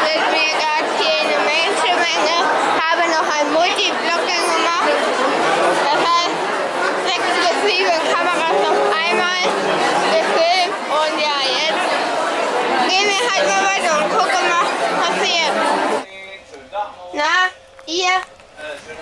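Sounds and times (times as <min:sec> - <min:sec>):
babble of overlapping voices: 0:00.0 - 0:19.0.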